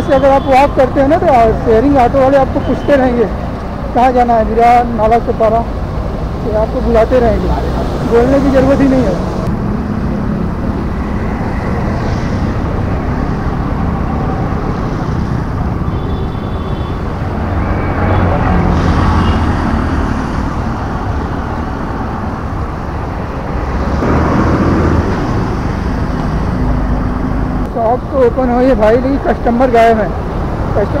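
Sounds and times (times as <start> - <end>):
road traffic: 0.0 - 31.0.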